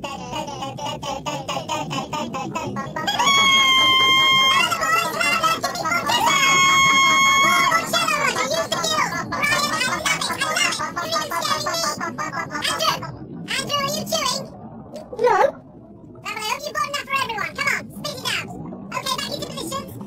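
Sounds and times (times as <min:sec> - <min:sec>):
high-pitched comic voices singing: 0:00.2 - 0:14.2.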